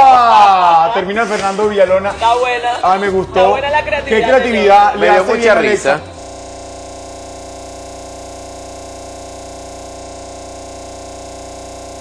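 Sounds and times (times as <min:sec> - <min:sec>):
steady electronic tone: 0:03.8 - 0:12.0.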